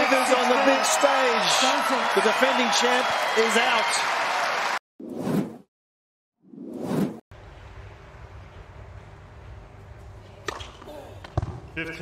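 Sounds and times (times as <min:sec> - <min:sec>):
low hum: 0:07.3 - 0:10.5.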